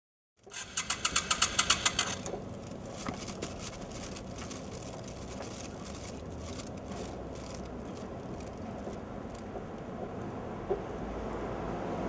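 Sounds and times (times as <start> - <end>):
motorcycle engine pulsing: 0.5 - 9.8.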